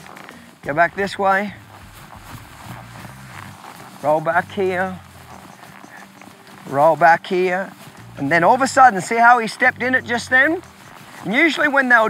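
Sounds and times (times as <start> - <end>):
horse hoofbeats on dirt and grass: 0.0 - 12.0.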